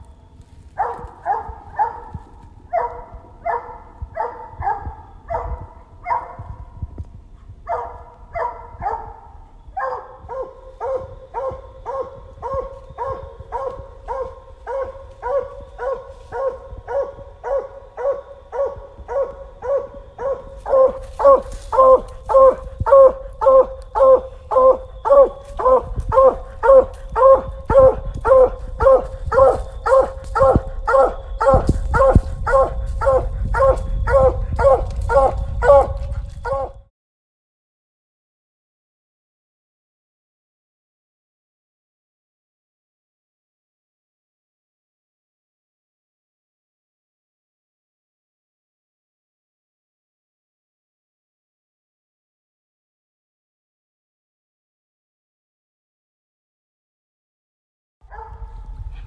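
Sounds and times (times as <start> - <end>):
hound barking: 0.7 - 6.7, 7.6 - 36.9, 58.1 - 59.0.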